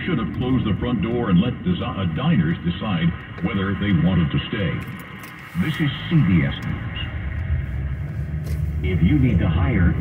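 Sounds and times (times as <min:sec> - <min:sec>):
radio speech: 0:00.0 - 0:07.4, 0:08.8 - 0:10.0
car tyre and engine noise: 0:00.0 - 0:10.0.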